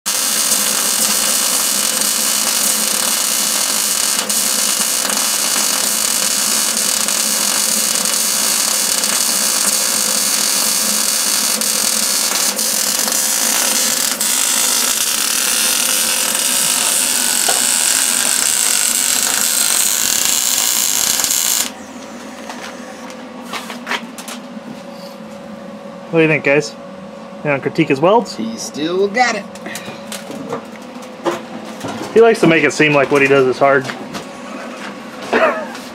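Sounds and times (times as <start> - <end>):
welder arc on steel: 0.1 - 21.8.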